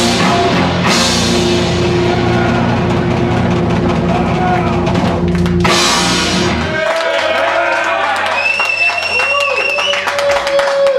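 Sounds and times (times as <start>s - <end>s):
bass guitar droning chord: 0.0s - 6.8s
distorted electric guitar: 0.0s - 6.8s
live rock band playing: 0.0s - 6.8s.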